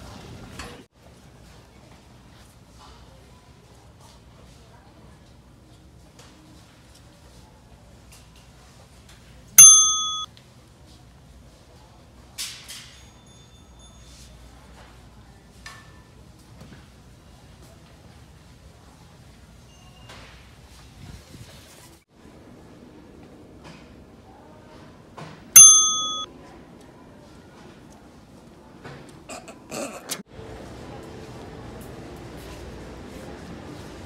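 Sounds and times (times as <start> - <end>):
faint store background: 0.0 - 34.0
bright bell ding: 9.6 - 10.3, 25.6 - 26.3.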